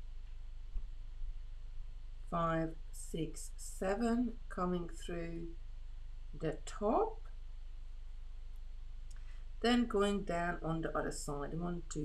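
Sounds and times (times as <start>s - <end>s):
low electrical hum: 0.0s - 12.0s
person speaking: 9.6s - 12.0s.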